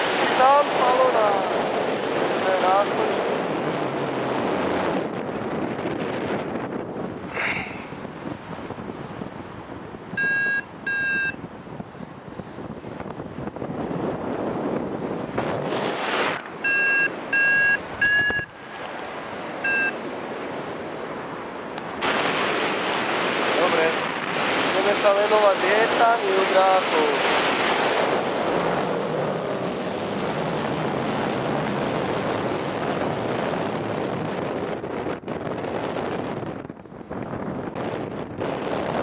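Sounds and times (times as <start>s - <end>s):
wind rushing over microphone: 0.0s - 39.0s
variometer short beeps: 10.2s - 11.4s, 16.6s - 18.5s, 19.6s - 20.0s.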